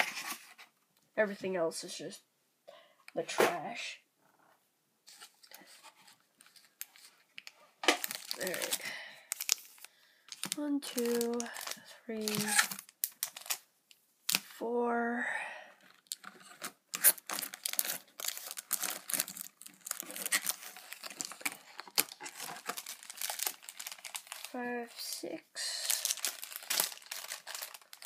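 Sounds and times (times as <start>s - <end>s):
person speaking: 3.1s - 4.0s, 8.3s - 9.0s, 10.4s - 12.7s, 14.6s - 15.3s, 24.4s - 26.3s
foil packaging crinkling: 6.4s - 13.6s, 15.9s - 24.7s, 25.8s - 28.0s.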